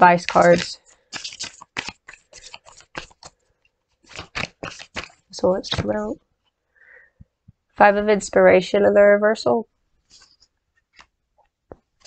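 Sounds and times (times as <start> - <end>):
cards being shuffled: 0.0 - 6.2, 10.1 - 12.0.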